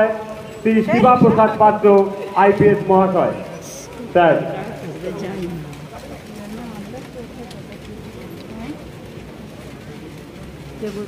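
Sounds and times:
people talking: 0:00.0 - 0:08.9, 0:10.8 - 0:11.0
outdoor background noise: 0:00.0 - 0:11.0.

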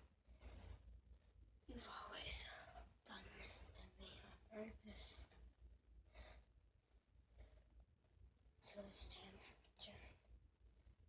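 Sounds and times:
person whispering: 0:01.7 - 0:05.3, 0:08.6 - 0:10.2.

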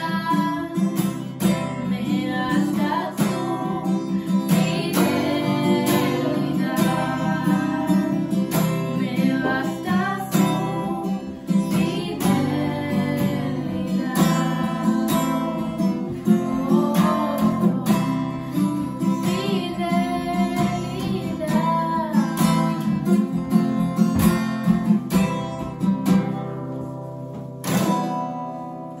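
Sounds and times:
young woman singing: 0:00.0 - 0:23.2
acoustic guitar strumming: 0:00.0 - 0:29.0.

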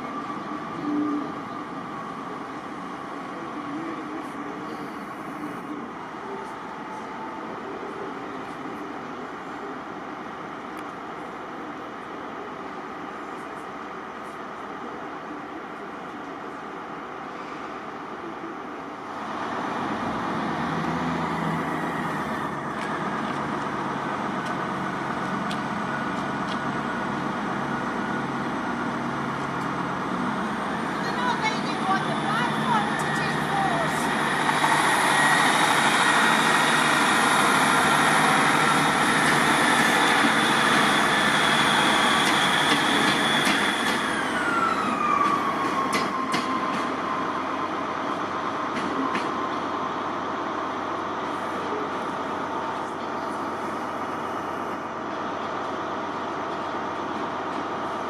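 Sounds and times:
diesel train running: 0:00.0 - 0:58.0.

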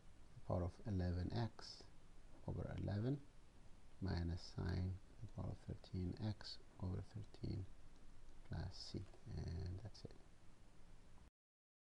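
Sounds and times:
man speaking quietly: 0:00.4 - 0:03.3, 0:04.0 - 0:07.7, 0:08.5 - 0:10.2.

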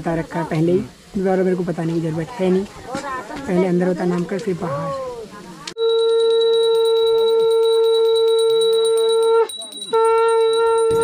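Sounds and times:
conch shell blowing: 0:05.8 - 0:11.0
high-pitched ringing rattle: 0:05.8 - 0:11.0.

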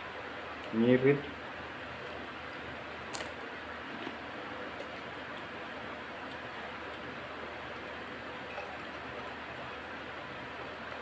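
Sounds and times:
chewing crunchy food: 0:02.0 - 0:05.5.

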